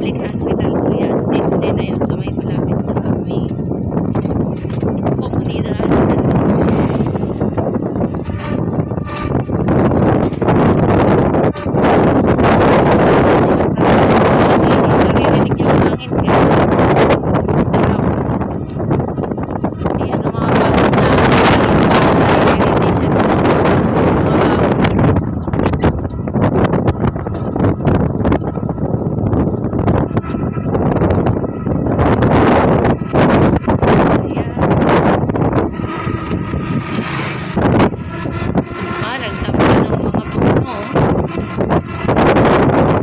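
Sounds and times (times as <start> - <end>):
motor vehicle running: 0.0 - 43.0
wind buffeting microphone: 0.0 - 43.0.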